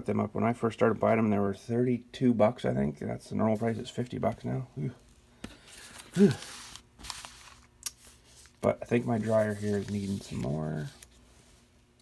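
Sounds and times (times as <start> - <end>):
glossy paper rustling: 5.0 - 11.7
man exhaling whew: 6.0 - 6.7.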